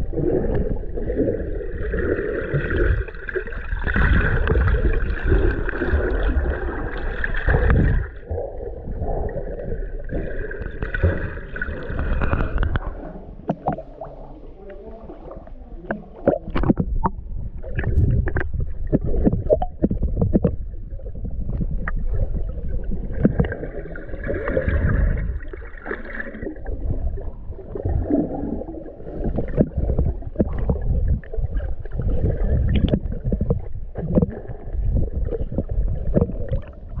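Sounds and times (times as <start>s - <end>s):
muffled underwater rumble: 0.0s - 37.0s
heavy low rumble: 15.5s - 23.6s.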